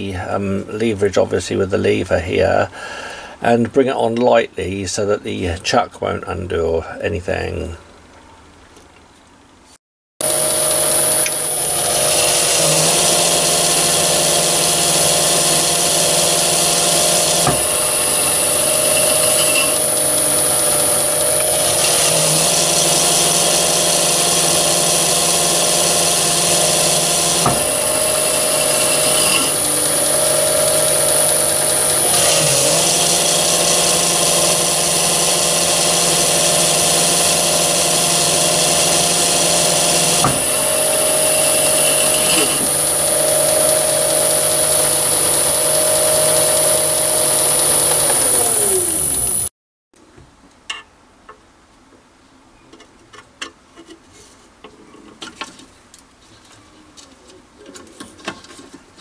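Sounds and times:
lathe motor and belt hum: 10.2 - 49.5.

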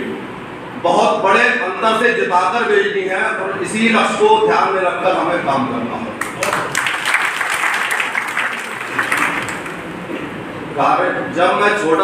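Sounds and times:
audience applauding: 6.2 - 10.0.

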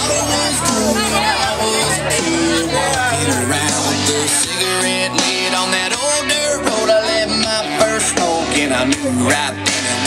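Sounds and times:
guitar music: 0.0 - 10.0
person singing: 0.0 - 10.0.

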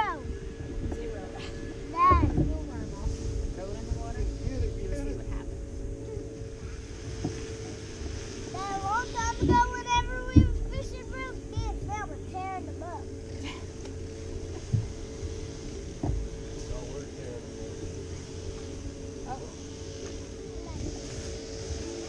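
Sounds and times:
electric trolling motor humming: 0.0 - 22.0
sharp knocks on boat: 10.3 - 10.8, 16.0 - 16.4.

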